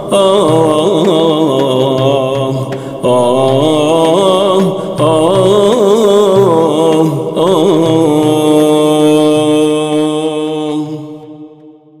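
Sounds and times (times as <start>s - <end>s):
man singing ornamented vocal line: 0.0s - 12.0s.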